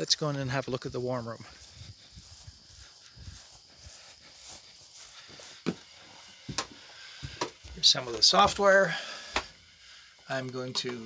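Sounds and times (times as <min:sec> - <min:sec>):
footsteps on grass: 0:00.0 - 0:09.6
faint high hiss: 0:00.0 - 0:11.0.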